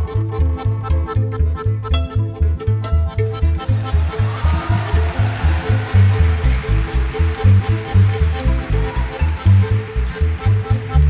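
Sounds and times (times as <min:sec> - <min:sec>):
accordion: 0:00.0 - 0:11.0
double bass: 0:00.0 - 0:11.0
violin: 0:00.0 - 0:11.0.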